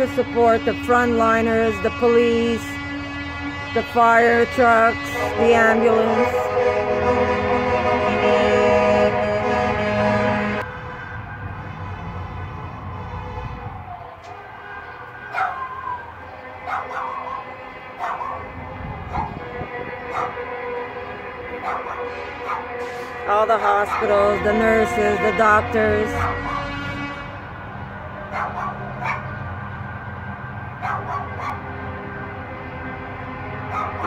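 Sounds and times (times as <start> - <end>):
loud horn blast: 0.0 - 13.7, 16.2 - 28.2, 31.3 - 34.0
dog yelping and barking: 15.3 - 15.8, 16.6 - 18.5, 19.1 - 19.4, 20.1 - 20.4, 21.6 - 22.7, 26.2 - 26.7, 28.3 - 29.3, 30.8 - 31.6, 33.7 - 34.0.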